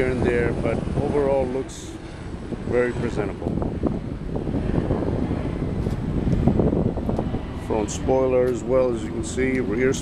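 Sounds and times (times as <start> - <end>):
wind noise on microphone: 0.0 - 10.0.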